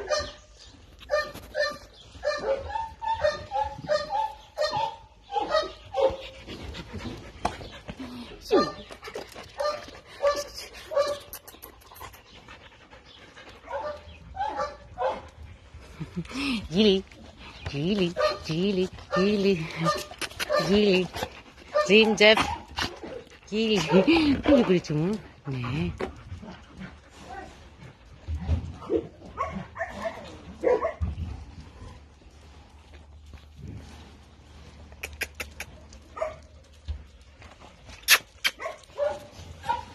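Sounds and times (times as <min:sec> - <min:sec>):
dogs barking: 0:00.0 - 0:00.4, 0:01.1 - 0:06.4, 0:09.6 - 0:11.3, 0:13.6 - 0:15.5, 0:19.1 - 0:24.2, 0:28.8 - 0:31.1, 0:36.1 - 0:36.5, 0:38.5 - 0:39.9
dogs panting: 0:01.3 - 0:39.9.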